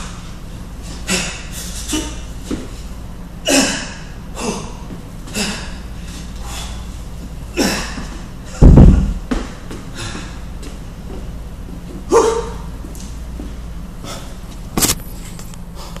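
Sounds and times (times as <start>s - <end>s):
steady low hum: 0.0s - 16.0s
kettlebell thud on rubber floor: 8.6s - 9.5s.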